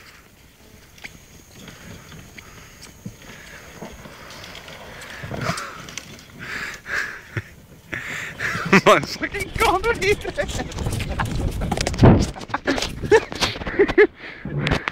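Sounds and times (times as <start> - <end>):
golf cart driving on grass: 0.5 - 13.9.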